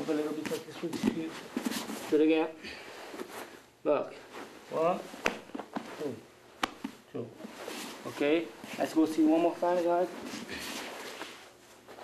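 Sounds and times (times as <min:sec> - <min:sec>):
cloth rustle: 0:00.0 - 0:12.0
hand slaps: 0:05.2 - 0:05.8, 0:06.6 - 0:07.0
man counting: 0:08.1 - 0:10.2.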